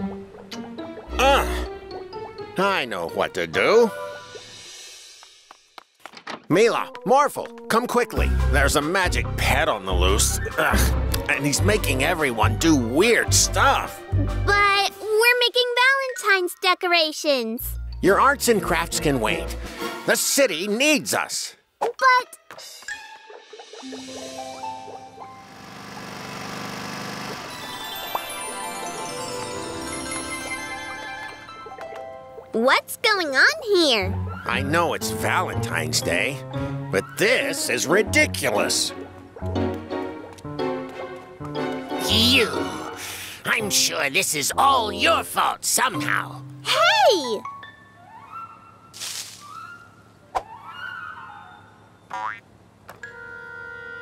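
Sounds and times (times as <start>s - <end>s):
light background music: 0.0s - 5.2s, 6.5s - 15.8s, 17.6s - 20.3s, 22.3s - 25.6s, 27.6s - 49.8s
cartoon car engine: 25.2s - 27.8s
rising springy boing: 52.1s - 52.4s.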